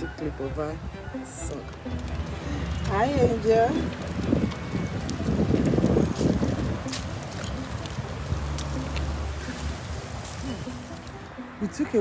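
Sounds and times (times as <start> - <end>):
stroller rolling on paved path: 0.0 - 12.0
wind buffeting microphone: 0.0 - 12.0.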